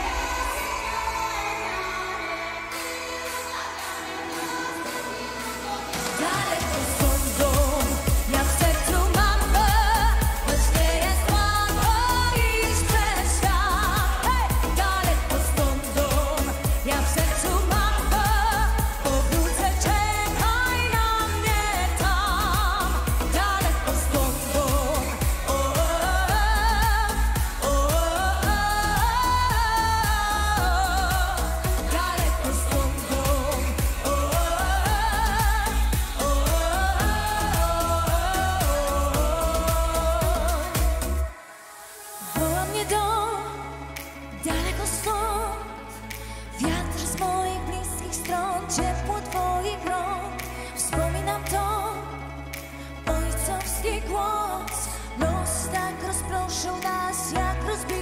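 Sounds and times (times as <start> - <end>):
heavy bass: 0.0 - 41.3, 42.4 - 54.3
woman singing: 0.0 - 58.0.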